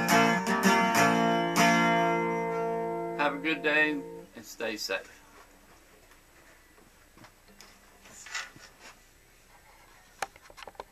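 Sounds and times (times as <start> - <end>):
brief rustle: 7.6 - 9.0.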